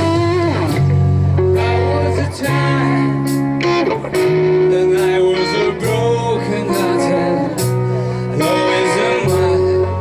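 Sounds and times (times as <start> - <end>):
electric guitar long notes: 0.0 - 10.0
live band playing: 0.0 - 10.0.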